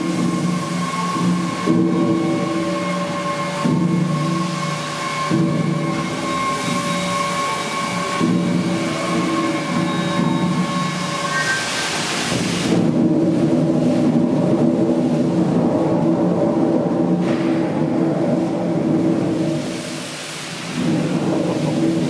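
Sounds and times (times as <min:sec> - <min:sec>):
high hiss: 0:00.0 - 0:14.3
steam engine rumbling: 0:00.0 - 0:22.0.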